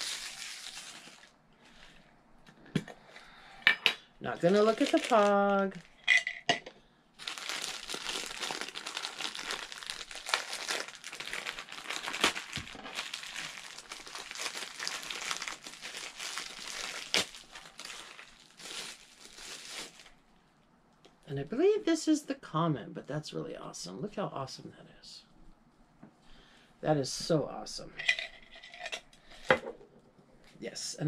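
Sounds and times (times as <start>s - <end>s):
plastic packaging crinkling: 0.0s - 2.0s, 4.2s - 6.0s, 7.2s - 20.2s.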